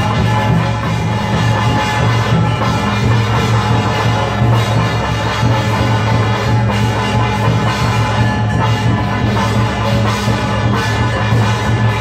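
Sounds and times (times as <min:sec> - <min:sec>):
drums: 0:00.0 - 0:12.0
ringing metal percussion: 0:00.0 - 0:12.0.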